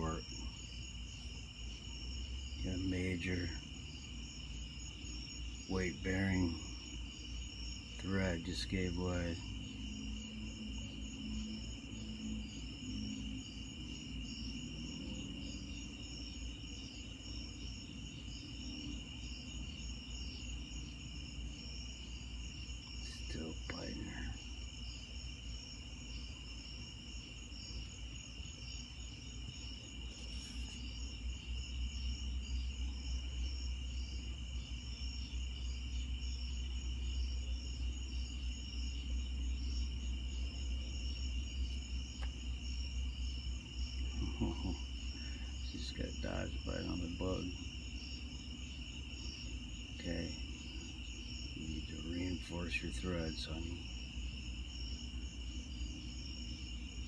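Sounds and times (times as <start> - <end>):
night insects chirping: 0.0 - 57.0.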